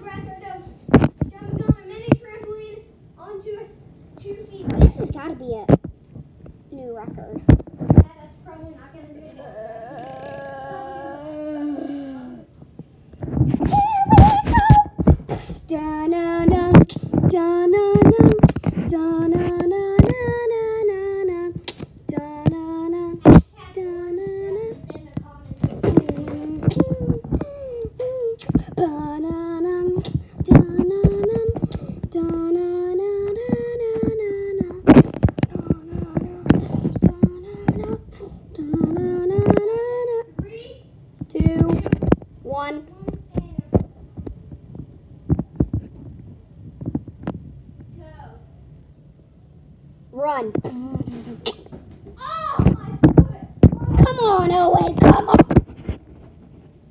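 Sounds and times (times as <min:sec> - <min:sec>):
child singing wordless tune: 0:15.7 - 0:43.8.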